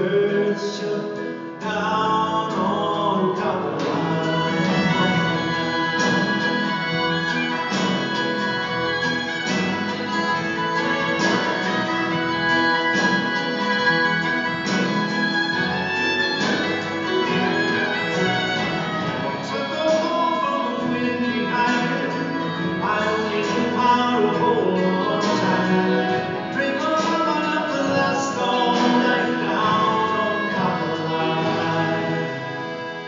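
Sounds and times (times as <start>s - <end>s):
person singing: 0.0s - 9.4s, 15.8s - 33.0s
acoustic guitar: 0.0s - 33.0s
strings: 0.0s - 33.0s.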